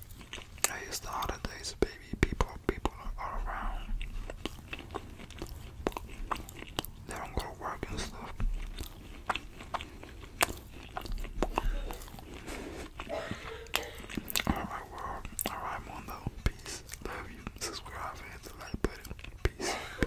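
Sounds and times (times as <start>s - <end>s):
person chewing: 0.0s - 20.0s
wet mouth clicks: 2.1s - 19.7s.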